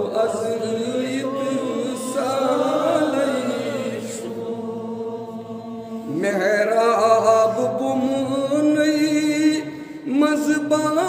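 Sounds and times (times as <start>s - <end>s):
man singing devotional chant: 0.0s - 11.0s.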